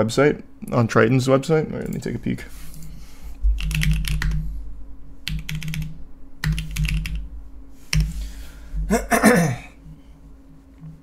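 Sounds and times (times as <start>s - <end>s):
typing on computer keyboard: 3.6s - 4.4s, 5.3s - 7.2s.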